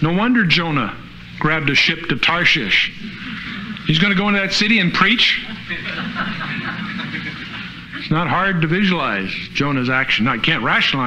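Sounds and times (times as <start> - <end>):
room noise: 0.0 - 11.0.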